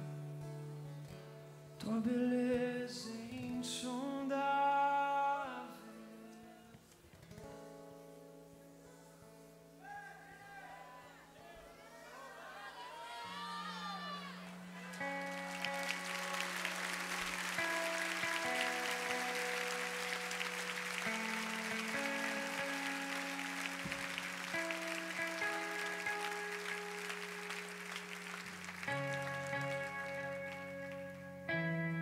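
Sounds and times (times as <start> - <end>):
congregation applauding: 13.8 - 31.5
soft band chords: 14.6 - 32.0.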